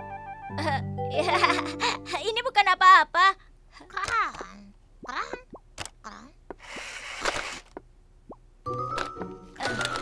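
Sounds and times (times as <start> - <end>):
breathy hissing noise: 6.6 - 7.8.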